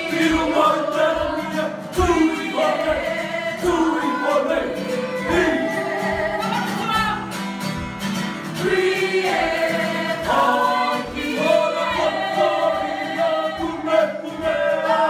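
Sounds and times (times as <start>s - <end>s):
group singing: 0.0s - 15.0s
percussion: 0.0s - 15.0s.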